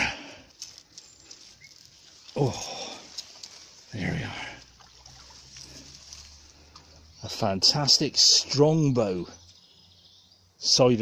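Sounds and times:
stream trickling: 0.0 - 11.0.

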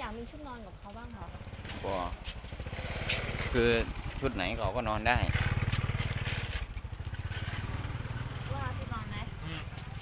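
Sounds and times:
motorcycle engine running: 0.7 - 10.0
people talking: 8.5 - 9.6.

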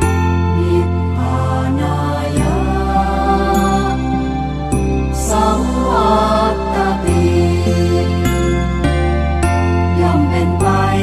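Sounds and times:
sustained instrumental music: 0.0 - 11.0.

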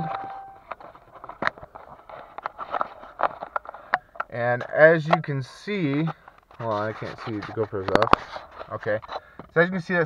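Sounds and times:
electronic beep: 0.0 - 0.6.

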